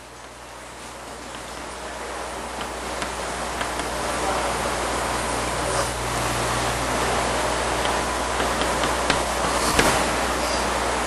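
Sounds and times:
low hum: 0.0 - 11.0
steady hiss: 0.0 - 11.0
faint clicks: 7.6 - 10.7.

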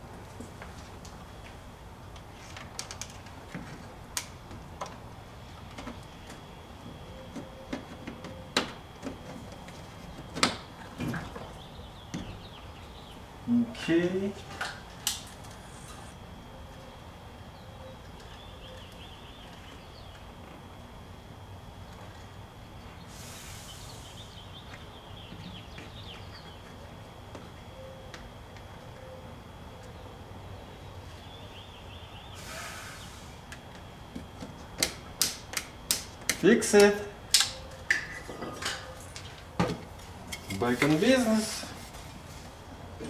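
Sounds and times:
thin high whine: 13.4 - 18.8.

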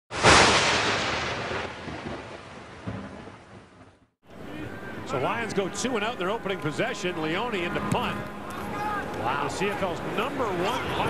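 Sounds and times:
thunder-like crash: 0.1 - 4.0.

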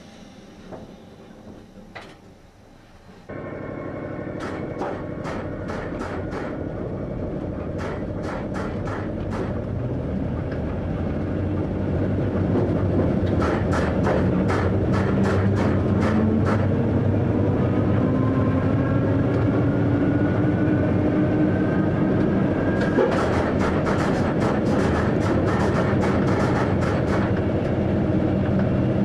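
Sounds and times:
faint rising whine: 0.0 - 5.7
train rumble: 3.0 - 29.0
wheels clicking over rail joints: 7.5 - 10.9, 11.5 - 16.8, 22.8 - 27.8.

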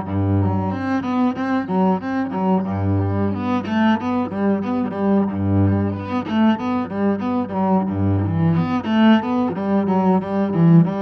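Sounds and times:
bowed cello melody: 0.0 - 11.0.

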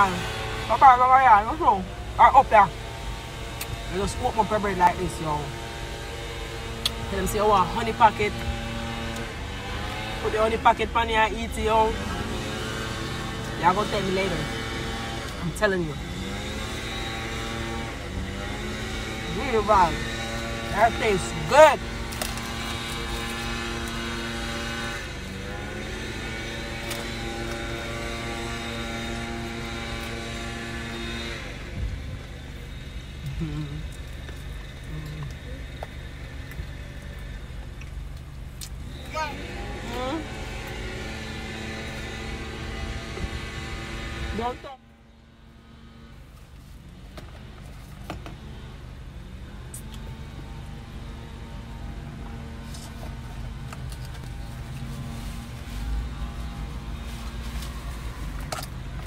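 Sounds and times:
engine drone: 0.0 - 59.0.

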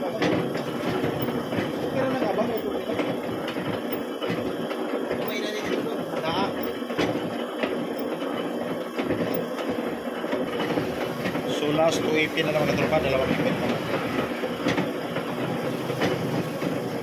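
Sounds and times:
machine tool running: 0.0 - 17.0
repeated knocks: 0.0 - 17.0.

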